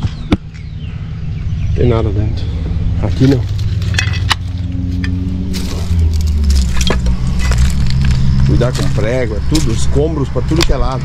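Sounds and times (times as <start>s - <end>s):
vehicle engine running: 0.0s - 11.0s
footsteps crunching on debris: 3.2s - 9.8s.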